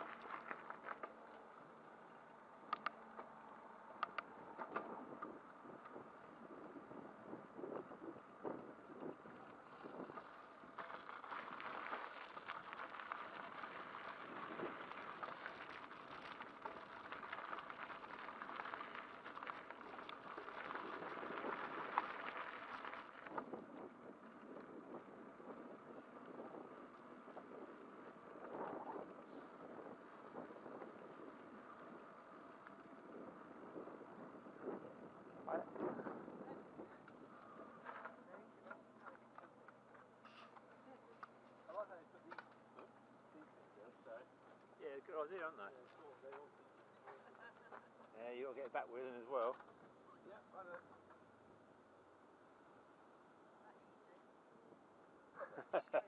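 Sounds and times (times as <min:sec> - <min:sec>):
tyres crunching on gravel: 0:00.0 - 0:02.6, 0:08.6 - 0:43.2
bicycle tyres rolling: 0:00.0 - 0:53.3
sharp clicks and knocks: 0:02.7 - 0:03.3, 0:04.0 - 0:04.9.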